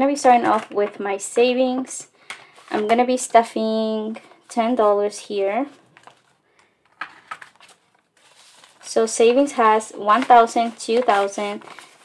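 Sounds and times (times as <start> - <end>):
paper bills rustling: 7.0 - 12.0.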